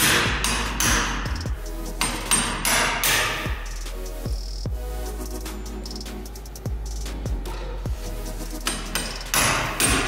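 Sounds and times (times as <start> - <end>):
background music with steady beat: 0.0 - 10.0
hammer striking impact screwdriver: 2.0 - 3.6, 8.6 - 10.0.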